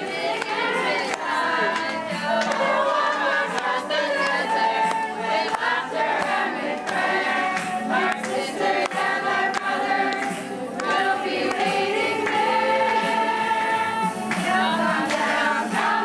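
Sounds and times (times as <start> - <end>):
young women singing in chorus: 0.0 - 16.0.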